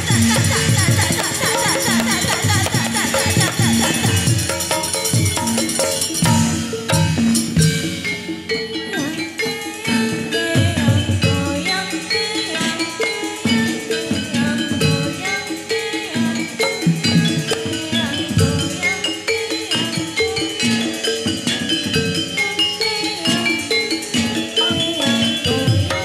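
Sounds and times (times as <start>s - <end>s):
gong-chimes and metallophones ringing: 0.0s - 26.0s.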